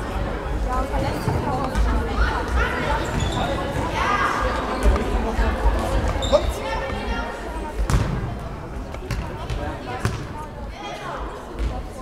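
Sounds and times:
players shouting in echoing hall: 2.1s - 4.9s.

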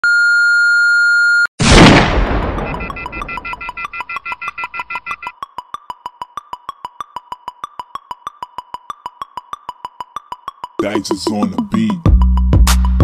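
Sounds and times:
loud crash: 1.6s - 2.9s
high electronic beep: 2.5s - 10.7s
rapid electronic ticks: 2.6s - 12.4s
synth music: 5.0s - 13.0s.

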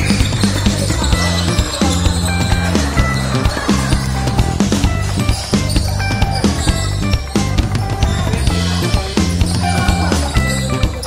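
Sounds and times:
loud music with steady beat: 0.0s - 11.0s.

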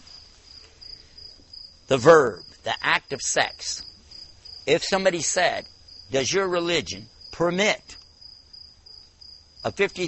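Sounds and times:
crickets chirring: 0.0s - 10.0s
man speaking: 1.9s - 3.9s, 4.6s - 8.0s, 9.6s - 10.0s.

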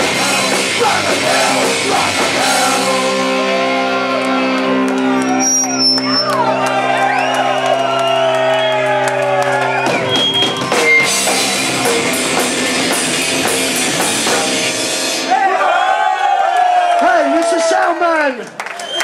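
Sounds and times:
drums and cymbals crashing: 0.0s - 3.5s, 9.7s - 16.1s.

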